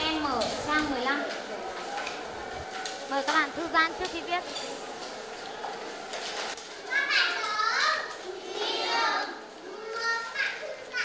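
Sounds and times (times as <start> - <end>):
young children's voices: 6.8 - 11.0.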